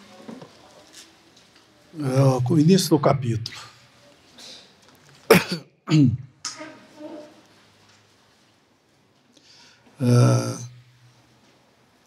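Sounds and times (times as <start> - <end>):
man coughing: 5.3 - 6.2, 10.1 - 10.7.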